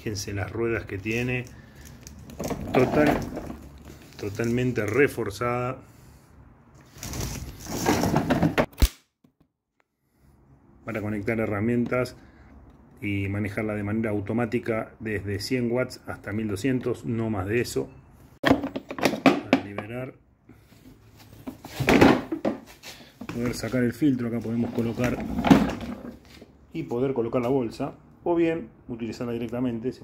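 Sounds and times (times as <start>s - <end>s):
rubbing and scraping handling noise: 0.3s - 5.2s, 6.0s - 8.7s, 20.6s - 26.6s.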